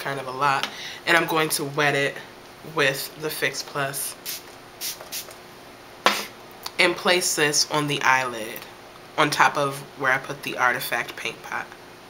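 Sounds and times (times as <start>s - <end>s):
spray bottle spritzing: 4.2s - 5.4s, 6.1s - 6.3s.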